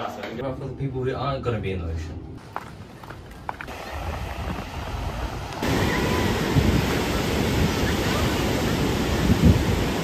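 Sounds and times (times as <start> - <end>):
wind on microphone: 3.6 - 10.0
ocean surf washing in: 3.7 - 10.0.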